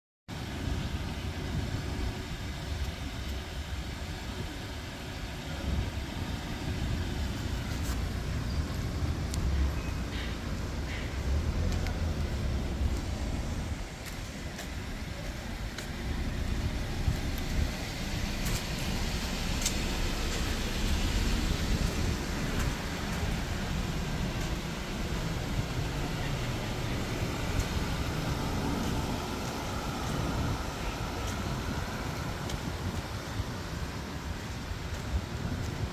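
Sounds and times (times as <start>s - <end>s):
low outdoor rumble: 0.3s - 35.9s
wind buffeting microphone: 5.5s - 35.9s.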